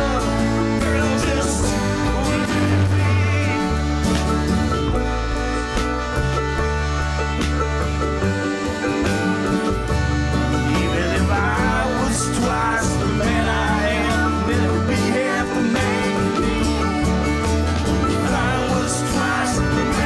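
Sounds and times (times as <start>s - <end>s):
country band playing: 0.0s - 20.0s
wavering lead melody: 0.0s - 20.0s.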